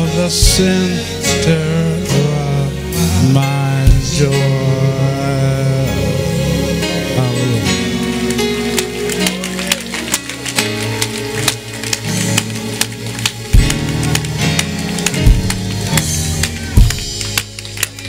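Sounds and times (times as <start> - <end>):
church band playing: 0.0 - 18.0.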